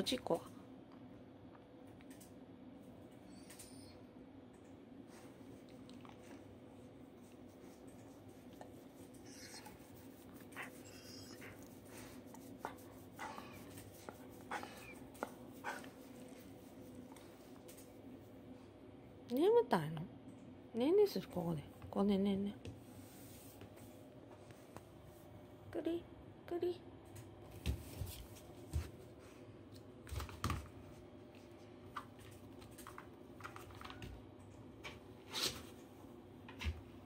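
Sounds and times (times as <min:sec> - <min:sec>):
dog whimpering: 0:09.2 - 0:09.8, 0:10.6 - 0:11.7.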